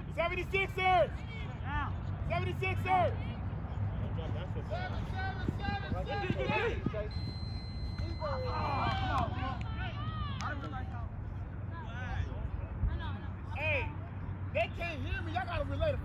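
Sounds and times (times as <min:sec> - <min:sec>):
people shouting outdoors: 0:08.0 - 0:10.8.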